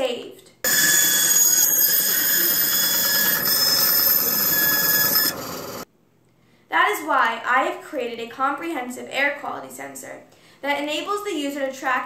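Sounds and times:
band saw cutting wood: 0.7 - 5.8.

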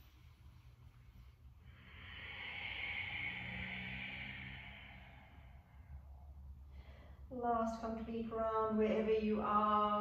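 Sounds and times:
person breathing out: 1.6 - 7.3.

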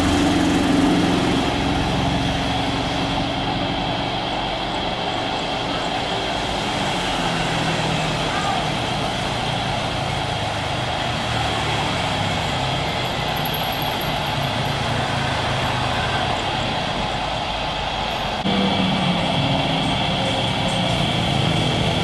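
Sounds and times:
jet engines rushing with whine: 0.0 - 22.0.

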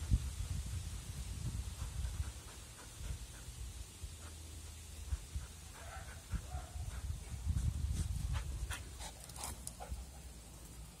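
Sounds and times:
dog paws scuffing and clicking: 5.1 - 11.0.

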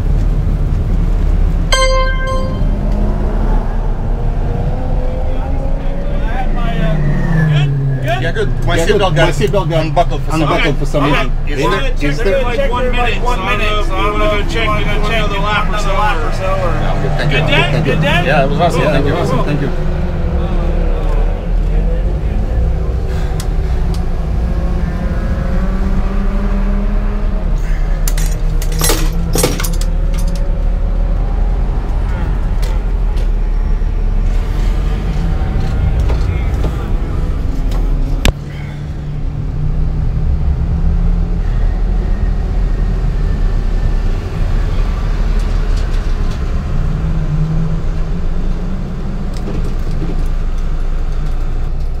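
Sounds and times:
rattles and clinks: 28.1 - 30.4.

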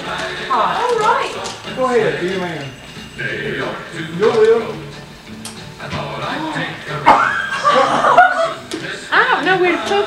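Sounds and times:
people chuckling and laughing: 6.9 - 9.2.

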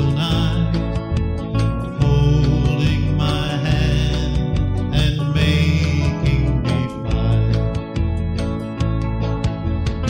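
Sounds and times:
bass and guitar backing: 0.0 - 10.0
person singing country ballad: 0.0 - 10.0.

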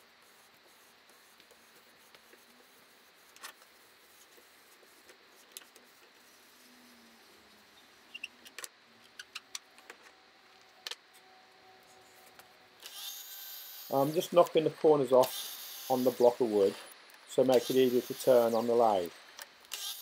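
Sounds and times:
saw motor whine: 12.8 - 14.3, 15.1 - 19.1.

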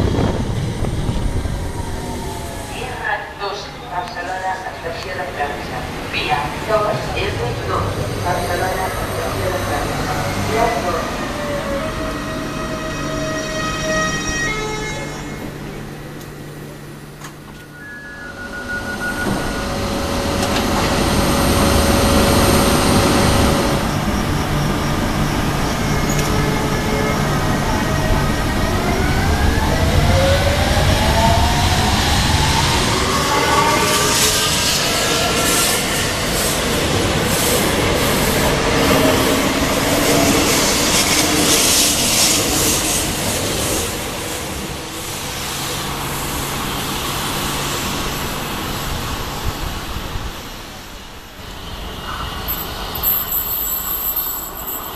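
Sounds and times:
train traction motor whine: 7.7 - 36.5.

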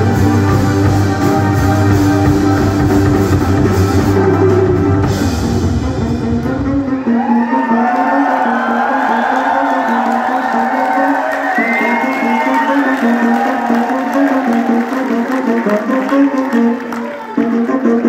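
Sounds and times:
live band drums and bass: 0.0 - 7.0
audience cheering: 6.7 - 17.9.

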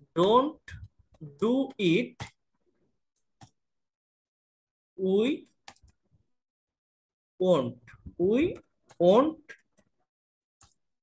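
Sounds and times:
person speaking: 0.0 - 2.4, 5.0 - 5.7, 7.4 - 9.7.

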